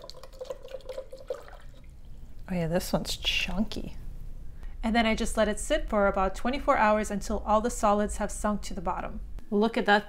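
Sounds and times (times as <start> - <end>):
water sloshing in pitcher: 0.0 - 2.2.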